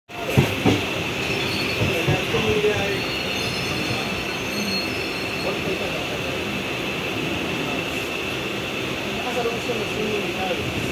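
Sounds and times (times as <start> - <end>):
train wheels rumbling on rails: 0.1 - 10.9
high squeal: 1.2 - 6.4.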